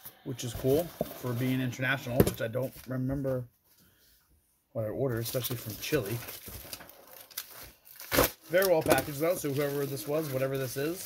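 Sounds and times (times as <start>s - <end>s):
bubble wrap crinkling: 5.4s - 11.0s.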